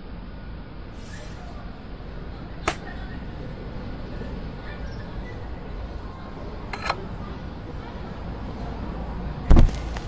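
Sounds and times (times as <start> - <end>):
low background noise: 0.0 - 10.0.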